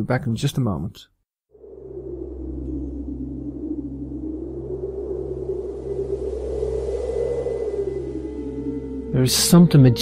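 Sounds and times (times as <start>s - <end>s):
low ambient music drone: 1.5s - 10.0s.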